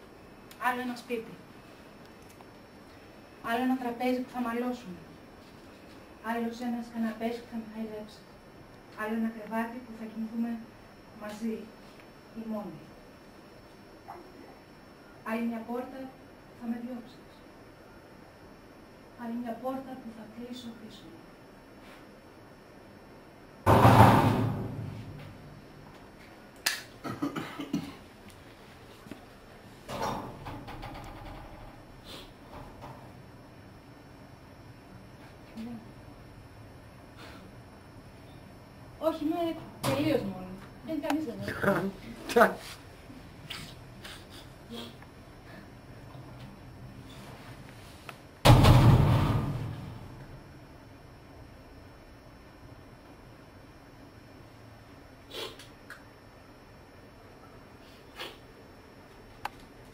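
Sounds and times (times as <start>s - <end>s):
door slamming: 48.4s - 50.0s.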